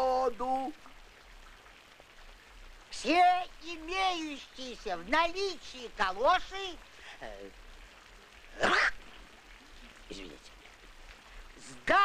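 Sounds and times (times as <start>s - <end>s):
person sneezing: 8.6s - 9.0s.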